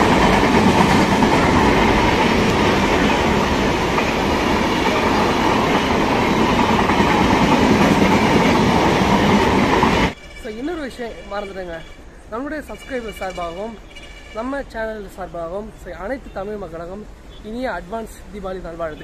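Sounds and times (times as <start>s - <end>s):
train wheels rumbling and rattling: 0.0s - 11.5s.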